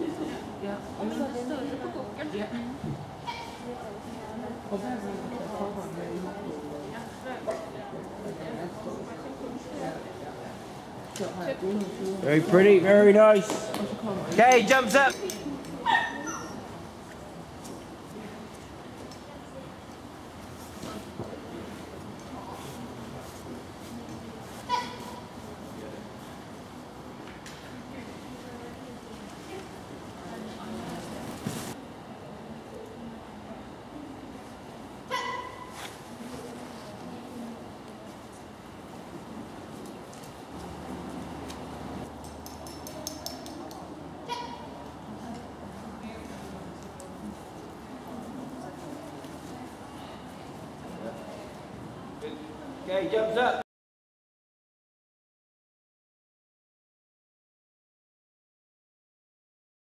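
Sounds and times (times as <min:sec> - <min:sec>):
murmur of voices: 0:00.0 - 0:53.6
dog barking: 0:15.9 - 0:16.6.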